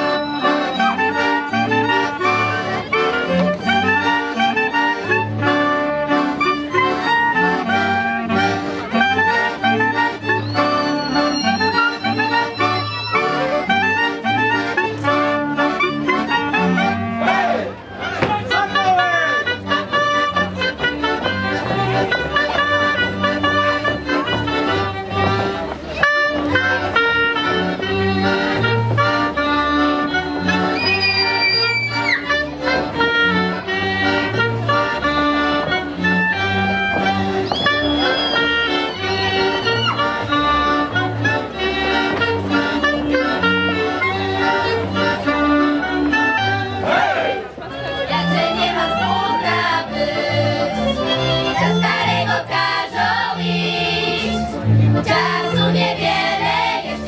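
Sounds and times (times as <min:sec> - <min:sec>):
folk band playing dance tune: 0:00.0 - 0:57.0.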